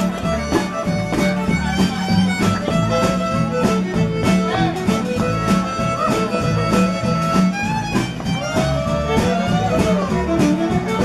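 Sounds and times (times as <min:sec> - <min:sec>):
bass notes: 0:00.0 - 0:11.0
fiddle melody: 0:00.0 - 0:11.0
strummed guitar: 0:00.0 - 0:11.0.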